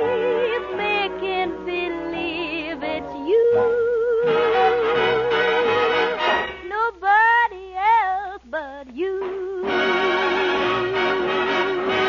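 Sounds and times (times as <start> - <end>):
woman singing slow ballad: 0.0 - 5.0.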